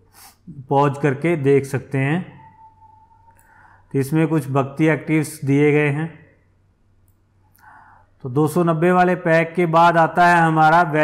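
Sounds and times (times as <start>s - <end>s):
man's voice: 8.3s - 11.0s.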